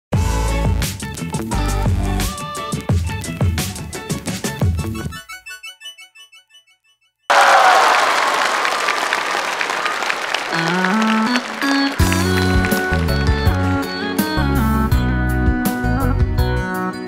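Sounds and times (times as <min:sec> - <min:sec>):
audience applause: 0:07.3 - 0:14.1
live band playing: 0:10.6 - 0:16.9.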